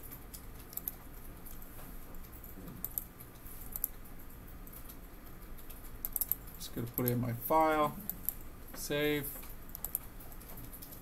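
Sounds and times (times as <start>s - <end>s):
steady low hum: 0.0s - 11.0s
keyboard and mouse clicks: 0.1s - 1.6s, 2.2s - 4.0s, 4.6s - 7.2s, 9.3s - 11.0s.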